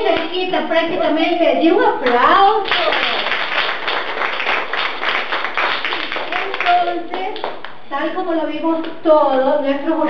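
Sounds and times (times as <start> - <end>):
people clapping: 2.0 - 7.8.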